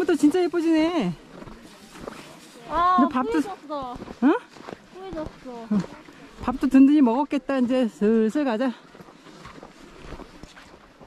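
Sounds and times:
footsteps on snow: 0.0 - 11.0.

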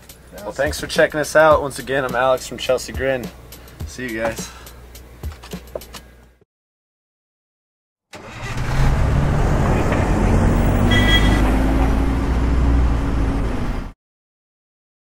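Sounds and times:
engine running and revving: 8.2 - 14.0.

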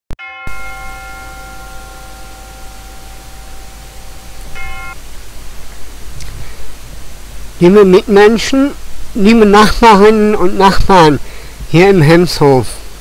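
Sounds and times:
bell-like chime: 0.2 - 5.0
low hum: 0.5 - 7.6
steady hiss: 0.5 - 13.0.

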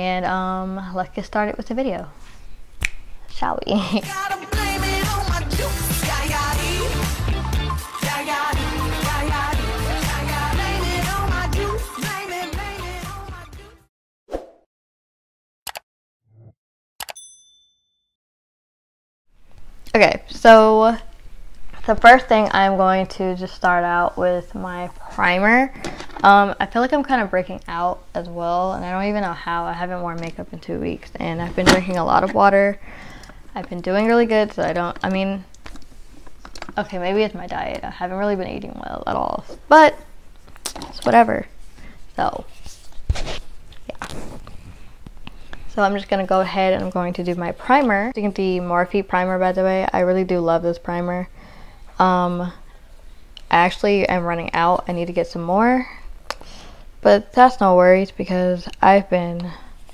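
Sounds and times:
bright bell ding: 17.1 - 18.1.

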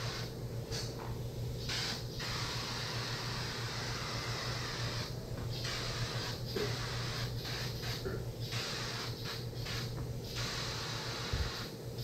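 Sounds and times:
air spray gun hissing: 0.0 - 1.0, 1.6 - 12.0
steady low hum: 0.0 - 12.0.

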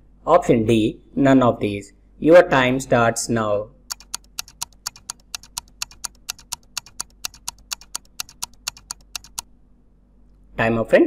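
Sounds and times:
rapid clock-like ticks: 3.9 - 9.4.

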